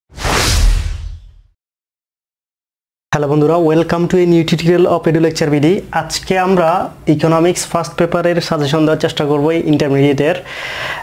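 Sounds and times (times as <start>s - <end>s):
whoosh: 0.1s - 1.6s
deep boom: 0.2s - 1.5s.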